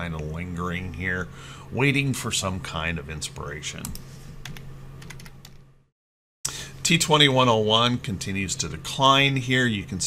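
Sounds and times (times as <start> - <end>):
low steady hum: 0.0 - 5.9, 6.5 - 10.0
computer keyboard typing: 3.9 - 5.6.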